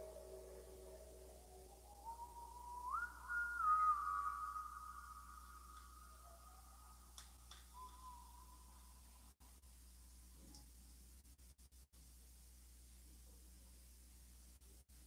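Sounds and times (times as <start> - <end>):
soft whistle-like tone: 0.0 - 9.2
faint clicks: 5.5 - 6.1, 7.0 - 8.2.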